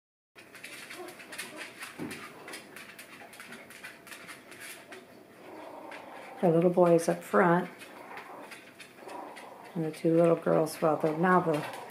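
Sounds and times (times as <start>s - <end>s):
puppies scrabbling on blanket: 0.4s - 11.9s
puppy whimper: 7.8s - 9.8s, 10.6s - 11.9s.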